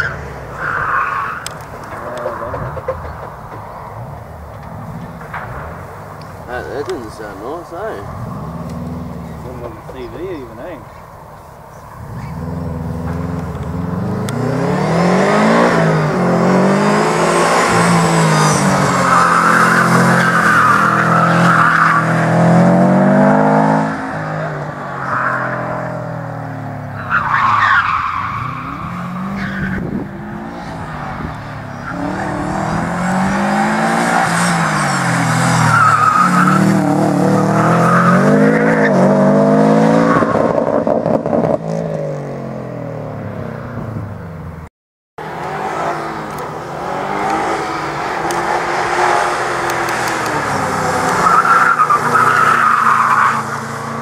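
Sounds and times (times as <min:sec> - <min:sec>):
car engine revving: 0:00.0 - 0:11.0, 0:11.7 - 0:44.5, 0:45.2 - 0:54.0
tyres squealing: 0:26.8 - 0:39.1, 0:45.6 - 0:54.0.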